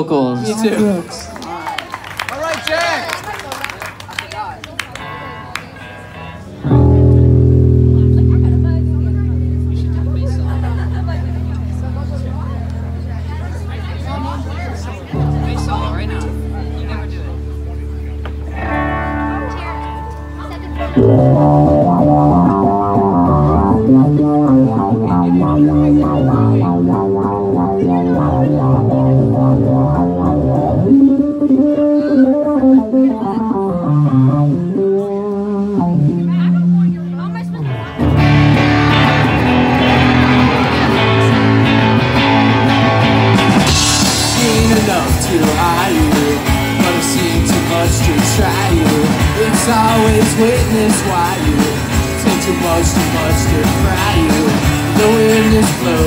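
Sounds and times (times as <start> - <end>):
live rock band playing: 5.0 - 56.0
electric bass low note: 6.6 - 56.0.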